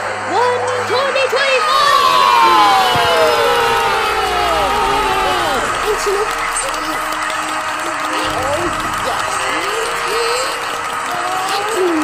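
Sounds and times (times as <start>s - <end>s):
crowd cheering and whooping: 0.0s - 12.0s.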